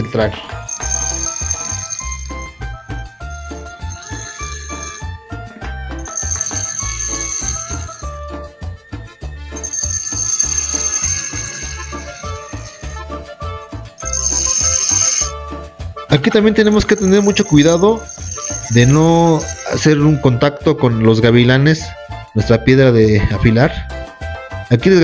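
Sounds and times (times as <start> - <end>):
background music with steady beat: 0.0 - 25.0
drill bit grinding on stone: 0.7 - 2.4, 3.8 - 5.1, 9.6 - 13.0, 14.0 - 15.3, 17.0 - 19.9.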